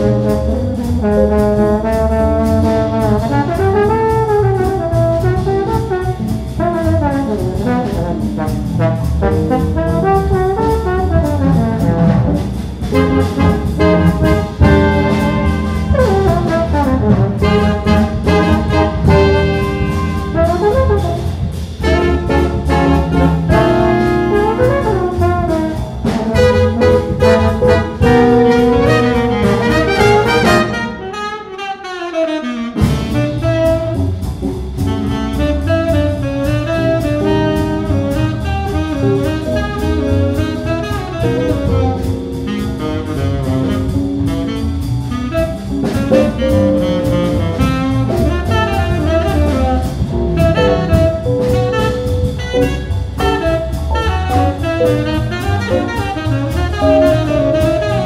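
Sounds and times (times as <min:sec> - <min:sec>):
double bass: 0:00.0 - 0:31.3, 0:32.2 - 0:58.0
drums: 0:00.0 - 0:58.0
trombone: 0:00.0 - 0:58.0
trumpet: 0:00.0 - 0:58.0
tenor saxophone: 0:13.0 - 0:21.2, 0:21.8 - 0:25.8, 0:26.4 - 0:34.2, 0:34.8 - 0:58.0.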